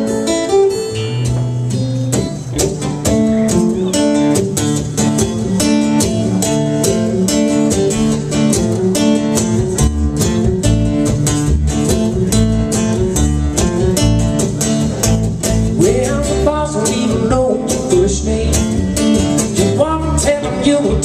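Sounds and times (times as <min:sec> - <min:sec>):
acoustic guitar strumming: 0:00.0 - 0:21.0
electric bass guitar line: 0:00.0 - 0:21.0.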